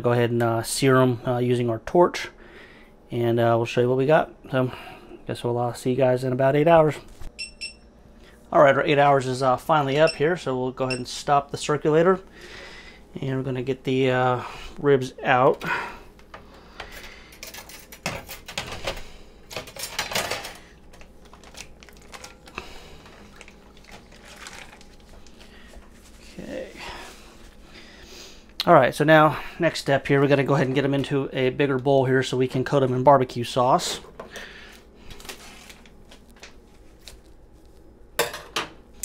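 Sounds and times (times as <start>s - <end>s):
plastic bags crinkling: 19.8s - 26.3s
water splashing: 23.2s - 25.1s.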